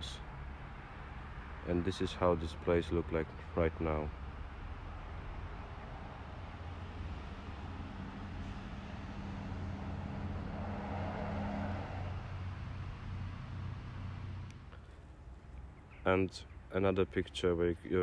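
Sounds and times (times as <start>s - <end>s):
car passing: 0.0s - 14.8s.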